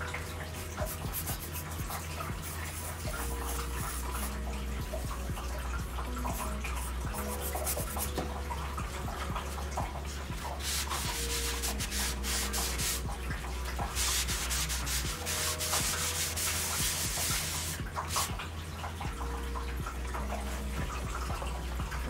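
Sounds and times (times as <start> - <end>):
bristle brush scratching on canvas: 0.6 - 5.0, 6.3 - 8.2, 10.4 - 13.1, 13.9 - 18.3.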